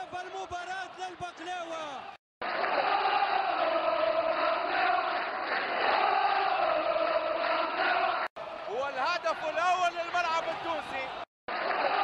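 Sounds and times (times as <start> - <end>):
stadium crowd chanting: 0.3 - 12.0.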